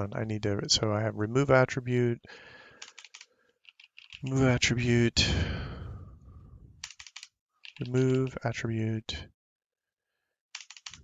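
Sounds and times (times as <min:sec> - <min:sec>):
computer keyboard typing: 0:02.8 - 0:04.4, 0:06.8 - 0:08.3, 0:10.6 - 0:11.0.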